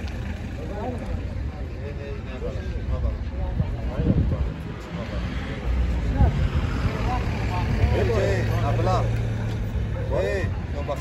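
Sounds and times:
men talking: 0.7 - 6.2, 7.4 - 11.0.

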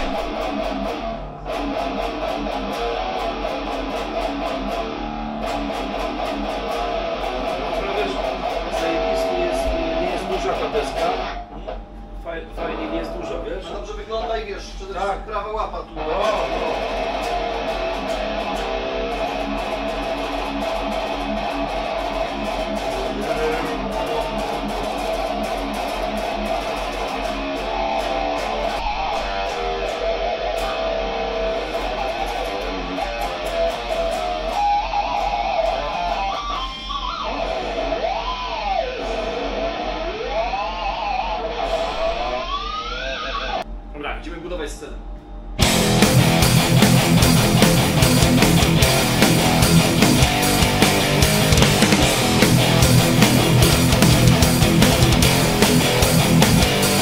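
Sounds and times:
electric guitar with string bends: 0.0 - 13.6, 15.9 - 43.7, 45.6 - 57.0.

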